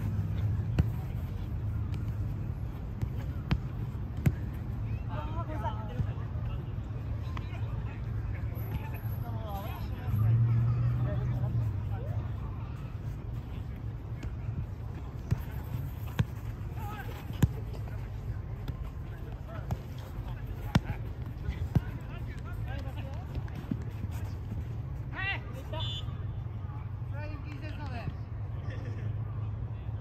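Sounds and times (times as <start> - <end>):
football kicked on turf: 18.6 - 22.4.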